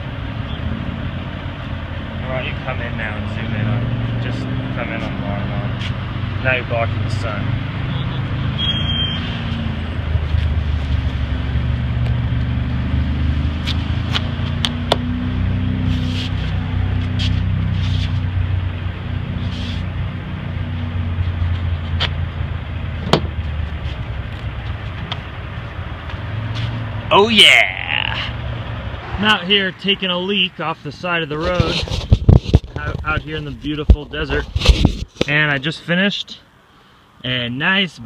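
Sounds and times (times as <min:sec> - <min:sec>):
vehicle engine running: 0:09.5 - 0:27.3.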